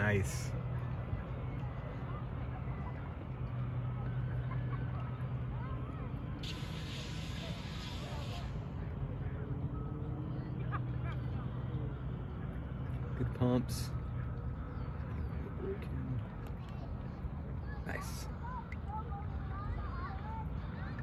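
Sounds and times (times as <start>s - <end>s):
low motor hum: 0.0s - 17.8s
burst of hiss: 6.4s - 8.5s.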